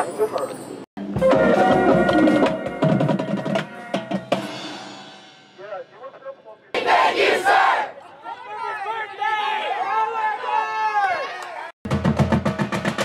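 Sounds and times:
marching band brass and drums: 1.0s - 5.6s, 11.8s - 13.0s
people cheering and yelling: 7.3s - 11.8s.

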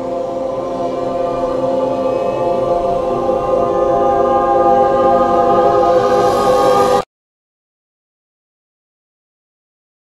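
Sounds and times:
choir holding sustained chord: 0.0s - 7.1s.

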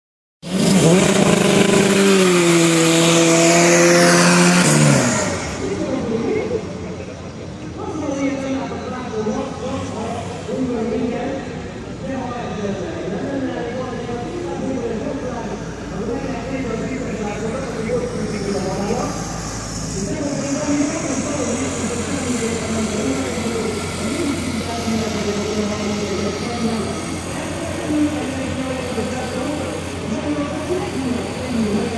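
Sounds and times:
drag cars launching: 0.4s - 7.8s, 8.7s - 31.9s
loud engine note at full throttle: 0.4s - 7.8s, 9.5s - 31.9s.

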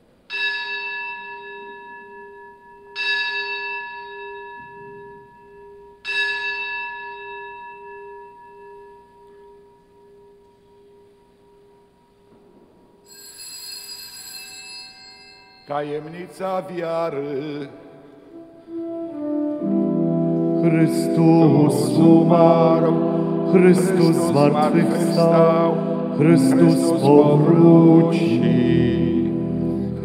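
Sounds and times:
softer higher bell ring: 0.3s - 15.8s
altar bell ringing: 0.3s - 16.4s.

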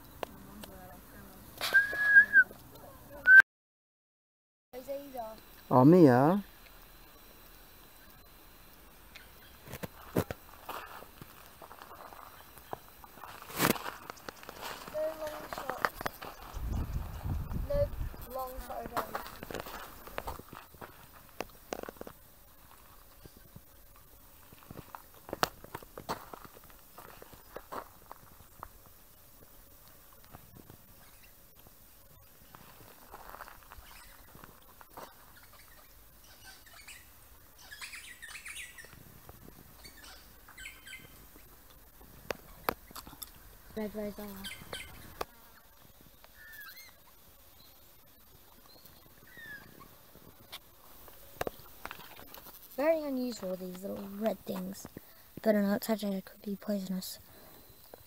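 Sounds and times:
high bird chirps: 35.3s - 38.9s, 39.8s - 41.1s, 44.4s - 45.2s.

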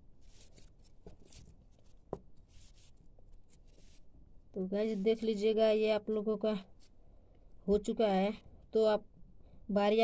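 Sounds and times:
wire leads rustling: 0.2s - 4.1s.

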